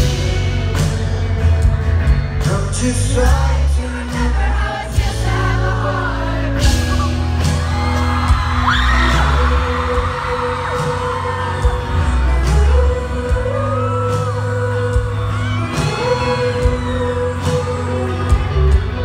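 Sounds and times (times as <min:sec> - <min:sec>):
bass holding long notes: 0:00.0 - 0:19.0
electric guitar: 0:00.0 - 0:19.0
fans screaming and whooping: 0:05.6 - 0:19.0.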